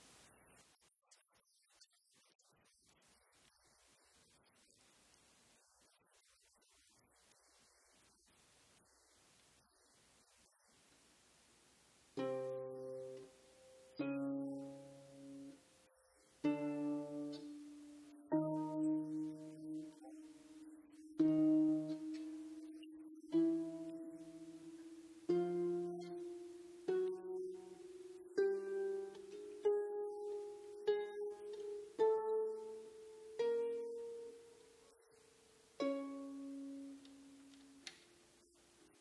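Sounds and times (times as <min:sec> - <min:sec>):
harp plucked chords: 0:12.2 - 0:15.6, 0:16.4 - 0:34.6, 0:35.8 - 0:38.0.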